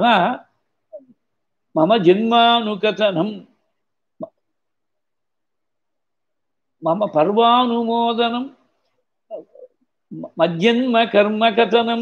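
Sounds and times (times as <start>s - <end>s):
man speaking: 0.0s - 0.5s, 1.7s - 3.6s, 6.8s - 8.6s, 10.1s - 12.0s.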